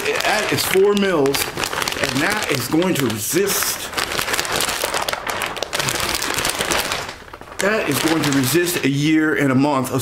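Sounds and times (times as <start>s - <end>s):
plastic sheeting crinkling: 0.0s - 10.0s.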